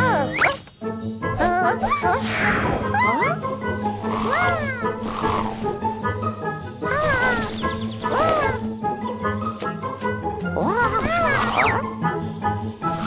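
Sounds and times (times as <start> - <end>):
light children's music: 0.0 - 13.0
cartoon baby dragon calls: 4.0 - 5.5, 10.6 - 11.8.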